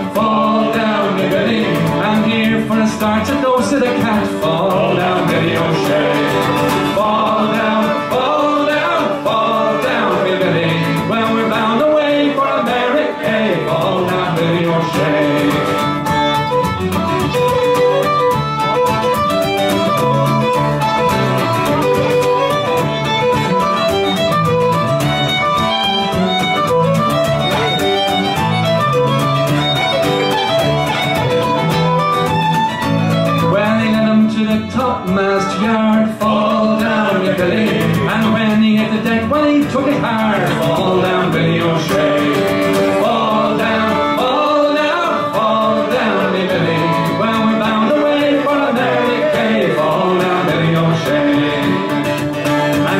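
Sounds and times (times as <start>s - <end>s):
acoustic guitar accompaniment: 0.0s - 52.9s
fiddle melody: 0.0s - 52.9s.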